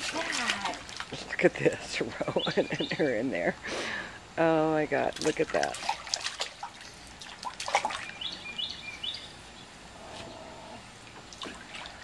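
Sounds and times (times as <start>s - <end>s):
water splashing in a pool: 0.0s - 3.4s, 4.4s - 8.6s, 10.9s - 12.0s
bird chirping: 8.0s - 10.8s.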